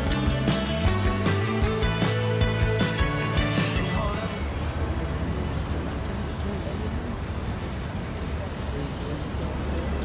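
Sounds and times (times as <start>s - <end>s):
engine and traffic rumble: 0.0s - 10.0s
faint voices: 4.0s - 10.0s.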